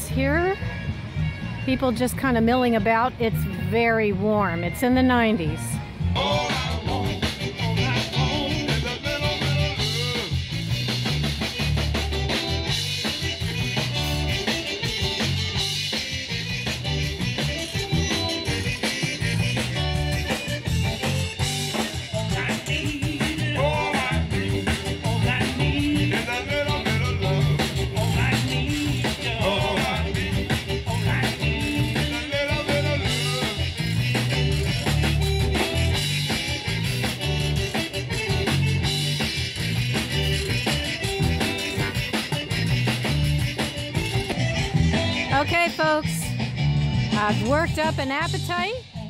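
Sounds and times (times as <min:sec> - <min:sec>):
electric guitar: 0:05.8 - 0:47.3
drum kit dance beat: 0:06.2 - 0:48.8.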